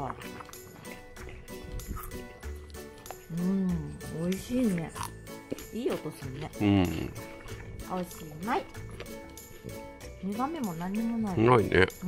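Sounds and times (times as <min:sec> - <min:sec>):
dog chewing crunchy radish: 0:00.0 - 0:03.3, 0:04.1 - 0:10.2
background music: 0:00.0 - 0:12.0.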